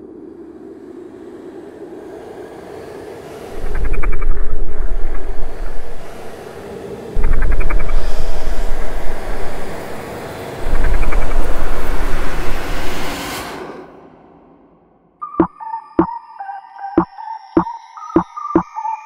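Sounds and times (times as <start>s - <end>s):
rushing noise: 0.0s - 14.8s
music beat: 15.2s - 16.2s, 16.9s - 18.9s.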